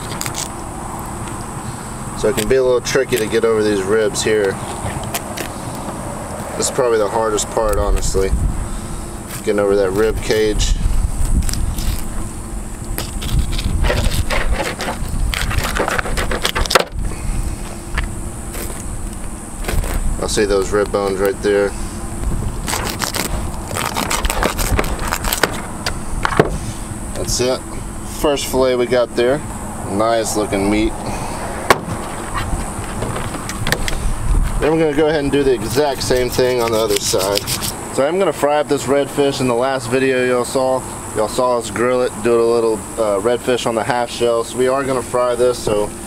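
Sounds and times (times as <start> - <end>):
outdoor background noise: 0.0 - 46.0
knife cutting through fish scales: 13.0 - 16.8, 22.6 - 25.6, 35.9 - 37.8.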